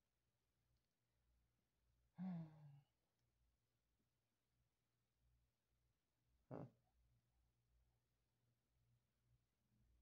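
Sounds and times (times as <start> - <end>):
person sighing: 2.2 - 2.8.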